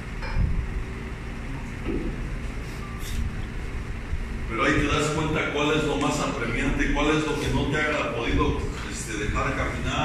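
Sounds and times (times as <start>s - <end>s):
low background rumble: 3.2s - 10.0s.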